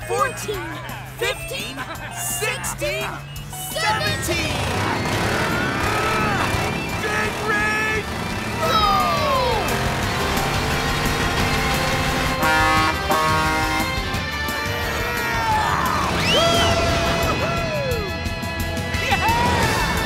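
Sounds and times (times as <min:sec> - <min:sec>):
cartoon background music: 0:00.0 - 0:20.0
truck engine: 0:00.0 - 0:20.0
gliding cartoon sound effects: 0:03.2 - 0:10.0.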